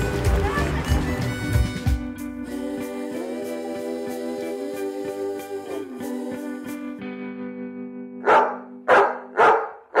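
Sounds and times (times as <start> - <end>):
small dog barking: 8.2 - 10.0.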